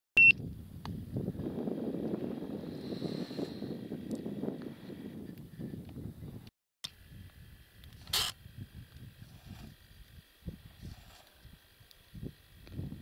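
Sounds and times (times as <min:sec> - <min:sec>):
wind buffeting microphone: 0:00.3 - 0:13.0
sharp hissing rustle: 0:07.0 - 0:12.6.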